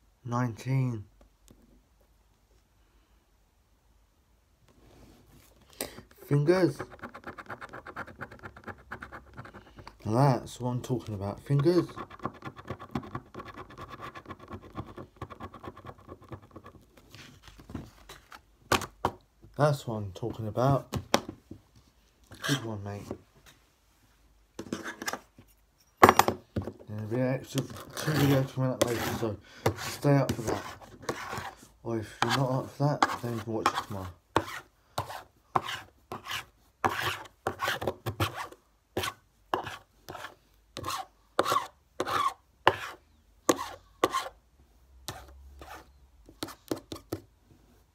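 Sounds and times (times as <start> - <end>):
scratchcard being scratched: 6.7 - 9.6, 11.8 - 16.8, 27.7 - 29.2.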